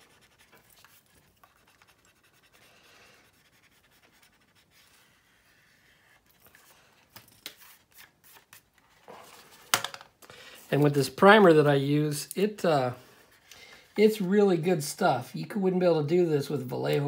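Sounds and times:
pencil eraser rubbing on plastic: 0.0 - 6.2.

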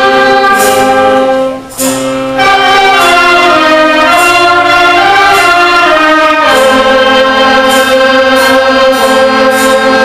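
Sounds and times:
concert band holding a chord: 0.0 - 10.0
light high percussion strokes: 0.0 - 10.0.

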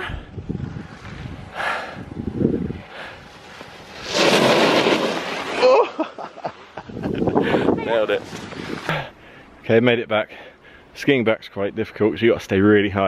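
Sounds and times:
wind buffeting microphone: 0.0 - 3.9, 6.8 - 8.9.

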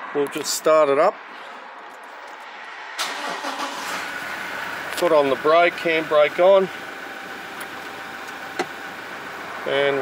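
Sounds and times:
diesel engine starting and running: 2.9 - 10.0.

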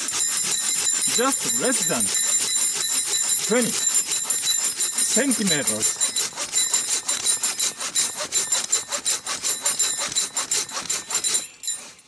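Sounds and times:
saw rasping through log: 0.0 - 12.0.

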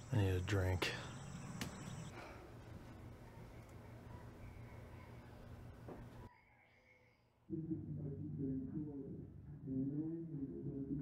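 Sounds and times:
faint background ambience: 0.0 - 11.0.

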